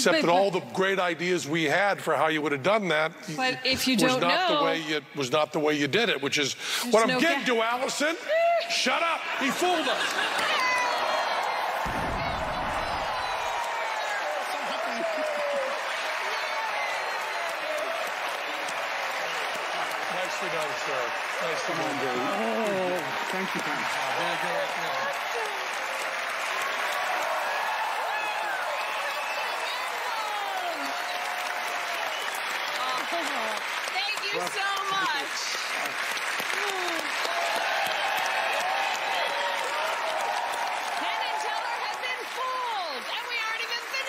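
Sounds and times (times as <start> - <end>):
audience applauding: 3.4 - 5.0, 7.0 - 44.0.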